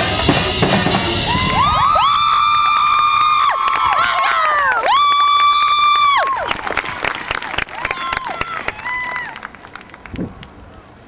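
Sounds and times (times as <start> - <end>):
crowd whooping: 1.1 - 9.8
crowd shouts and claps: 1.3 - 10.0.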